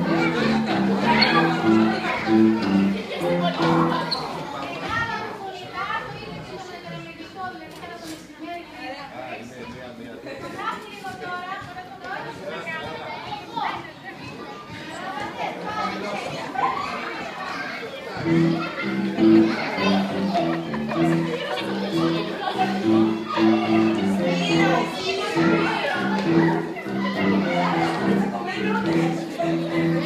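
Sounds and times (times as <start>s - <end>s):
children calling: 0.0s - 6.9s, 12.8s - 30.0s
children chattering: 0.0s - 30.0s.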